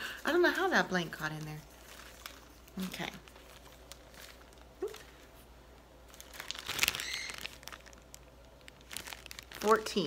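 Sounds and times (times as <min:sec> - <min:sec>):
plastic bag and paper rustling: 0:00.0 - 0:10.0.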